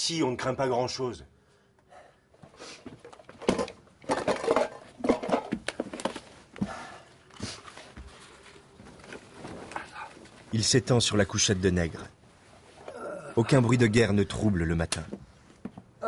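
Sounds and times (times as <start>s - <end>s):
rustling: 7.4s - 10.6s.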